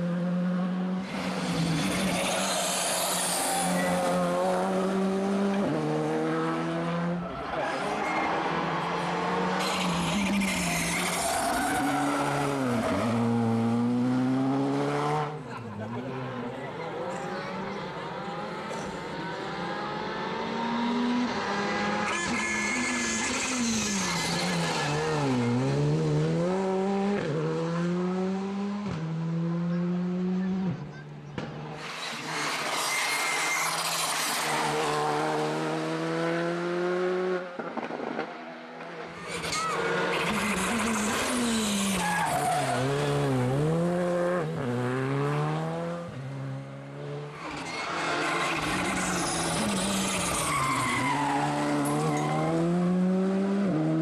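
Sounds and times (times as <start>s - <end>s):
rally car engines revving past: 0.0s - 54.0s.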